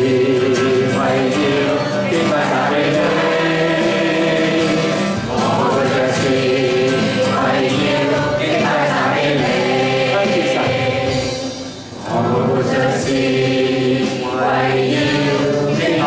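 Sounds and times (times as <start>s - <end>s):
acoustic guitar strumming: 0.0s - 16.0s
group singing worship song: 0.0s - 16.0s.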